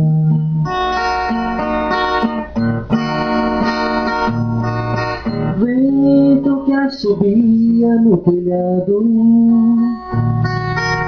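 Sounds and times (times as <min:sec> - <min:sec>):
acoustic guitar melody: 0:00.0 - 0:11.0.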